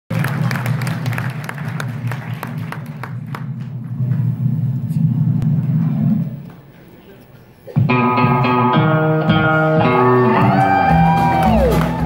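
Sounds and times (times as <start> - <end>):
audience applause: 0.1 - 4.4, 10.0 - 12.0
low rumble of crowd noise: 0.1 - 12.0.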